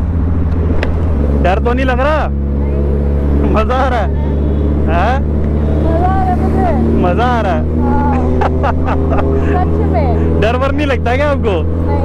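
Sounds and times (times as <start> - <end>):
motorcycle engine droning: 0.0 - 12.0.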